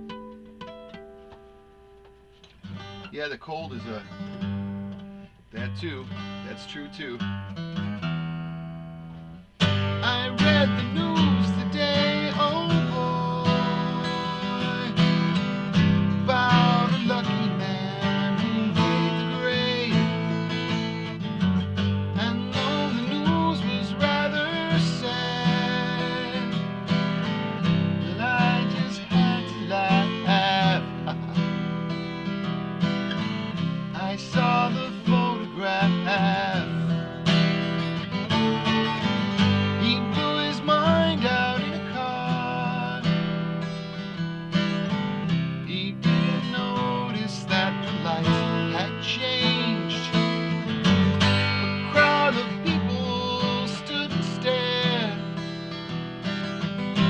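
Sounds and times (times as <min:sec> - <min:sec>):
acoustic guitar strummed and picked: 0:00.0 - 0:57.0.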